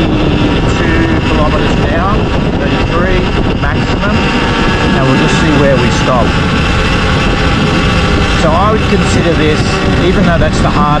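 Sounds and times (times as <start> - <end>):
electric motorbike drivetrain whine: 0.0 - 11.0
wind buffeting on microphone: 0.0 - 11.0.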